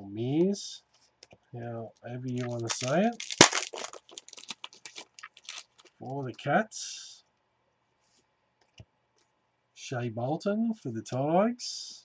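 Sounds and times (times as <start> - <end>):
trading cards flipped by hand: 2.3 - 6.0.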